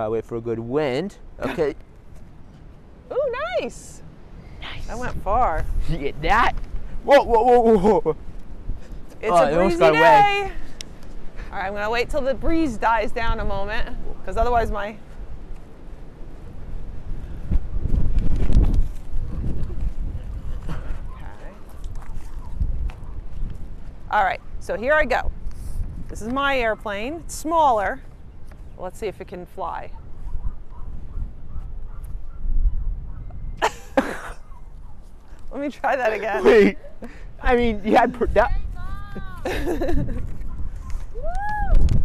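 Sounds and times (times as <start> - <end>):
wind on microphone: 3.1 - 35.6, 38.0 - 42.0.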